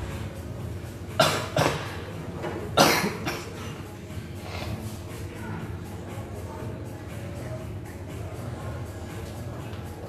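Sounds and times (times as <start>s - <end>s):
person coughing: 1.2s - 2.0s, 2.8s - 3.8s.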